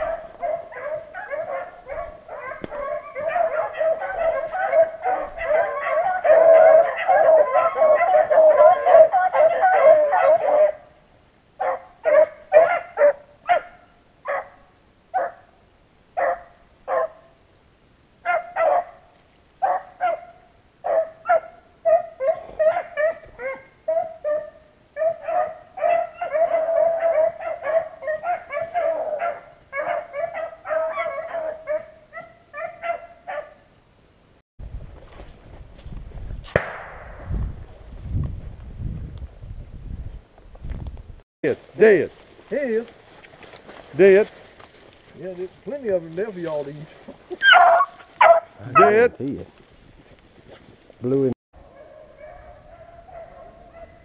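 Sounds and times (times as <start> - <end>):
hounds baying: 0.0 - 10.9, 11.6 - 14.6, 16.2 - 17.3, 18.2 - 19.0, 19.6 - 33.6, 45.2 - 49.2, 51.6 - 54.0.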